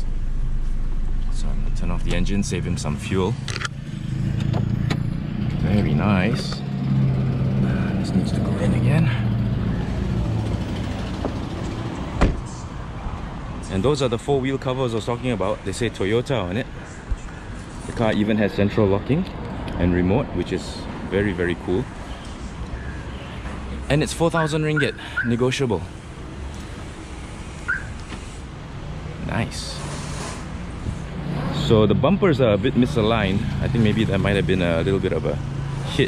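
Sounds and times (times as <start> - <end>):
low traffic rumble: 0.0 - 36.0.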